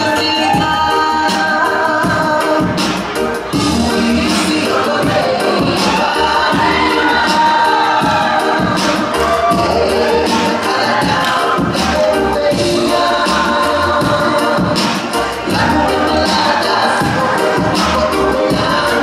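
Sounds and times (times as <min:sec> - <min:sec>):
crowd of guests talking: 0:00.0 - 0:19.0
song with singing and beat: 0:00.0 - 0:19.0.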